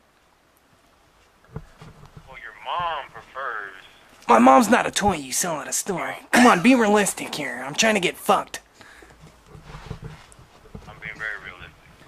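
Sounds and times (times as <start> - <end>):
camera handling knocks and rubbing: 1.5 - 2.9, 9.2 - 11.3.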